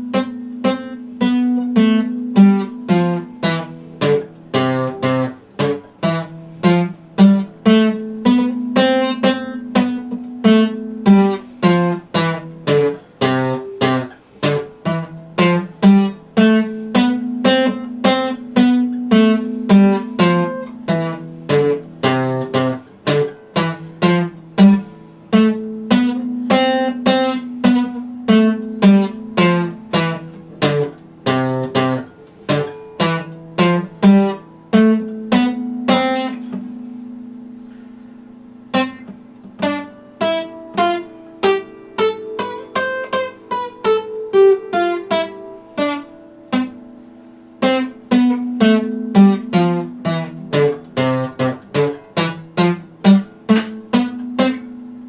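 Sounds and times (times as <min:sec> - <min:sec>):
acoustic guitar strummed: 0:00.0 - 0:55.0.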